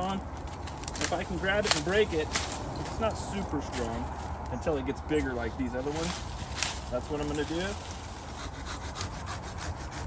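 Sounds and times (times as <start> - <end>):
handsaw cutting ivy stem: 5.8 - 10.0.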